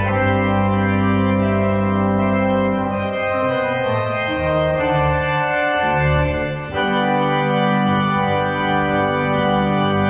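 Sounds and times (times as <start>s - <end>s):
organ playing a hymn: 0.0s - 10.0s.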